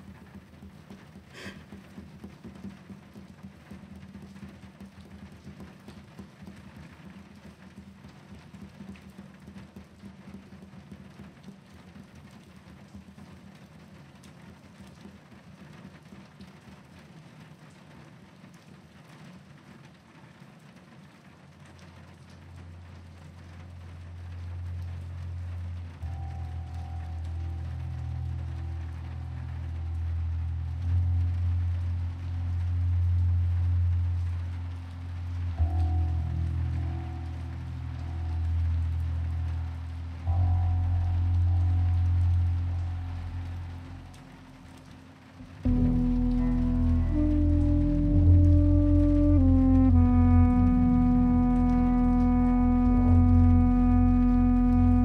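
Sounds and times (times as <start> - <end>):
music with low held notes: 0.0 - 16.8, 21.5 - 55.0
steady rainfall: 0.0 - 55.0.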